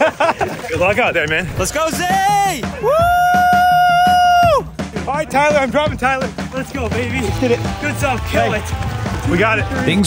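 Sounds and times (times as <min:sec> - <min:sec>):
background music with drum beat: 0:00.0 - 0:10.0
person shouting woo: 0:02.1 - 0:04.7.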